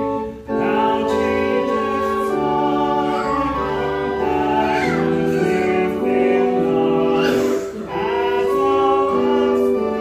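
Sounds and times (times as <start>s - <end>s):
keyboard chords: 0.0s - 10.0s
people singing a hymn: 0.0s - 10.0s.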